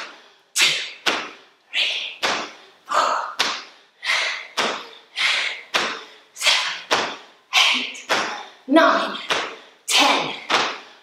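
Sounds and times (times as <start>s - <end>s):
feet landing jumps on hard floor: 1.0s - 1.4s, 4.5s - 5.0s, 5.7s - 6.2s, 6.9s - 7.3s, 8.0s - 9.7s, 10.3s - 11.0s.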